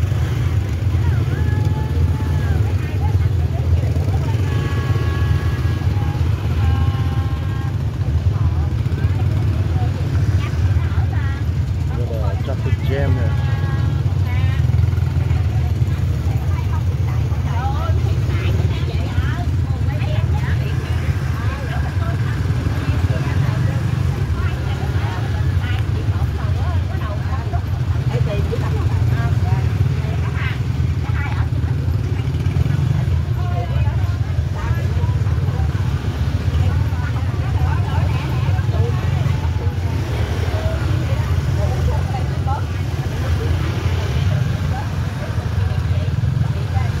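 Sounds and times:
motorbike engines rumbling: 0.0 - 47.0
people talking: 0.0 - 47.0.

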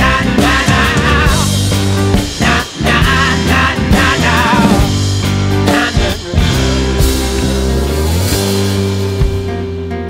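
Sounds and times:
drums: 0.0 - 10.0
electric guitar: 0.0 - 10.0
fretless bass: 0.0 - 10.0.

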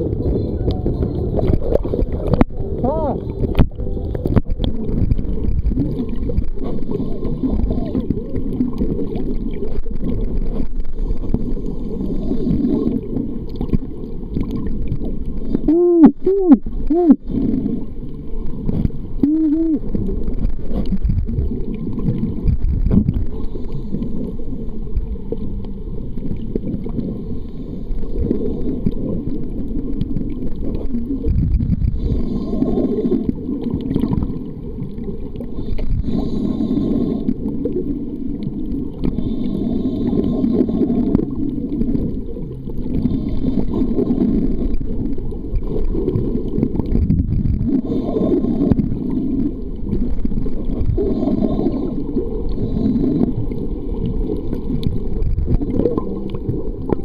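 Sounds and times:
underwater rumble of moving water: 0.0 - 57.0.

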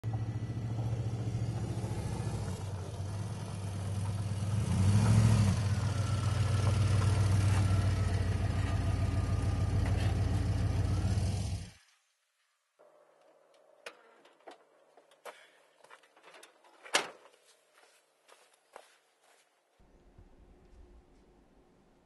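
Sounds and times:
vehicle engine humming: 0.0 - 11.8.

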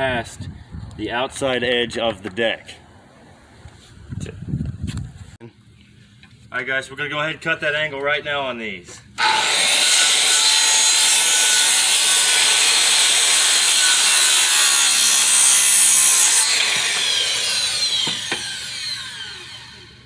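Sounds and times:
circular saw cutting wood: 9.2 - 20.0
saw blade winding down: 9.2 - 20.0.

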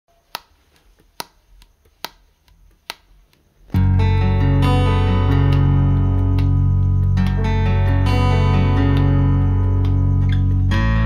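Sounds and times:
finger snaps: 0.2 - 10.8.

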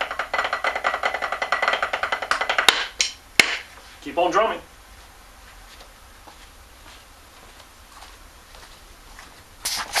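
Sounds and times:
handling noise rustling and knocking: 0.0 - 3.8.

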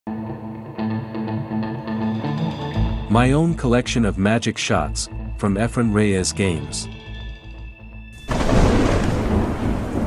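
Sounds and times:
thunder clap and rumble: 8.2 - 10.0.

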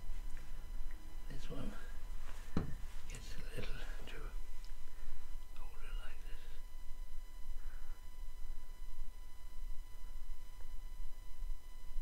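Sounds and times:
quiet indistinct muttering: 0.0 - 12.0.

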